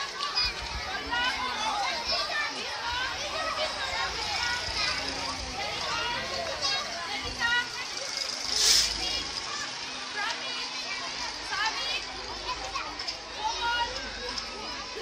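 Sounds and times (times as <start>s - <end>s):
children chattering and calling: 0.0s - 15.0s.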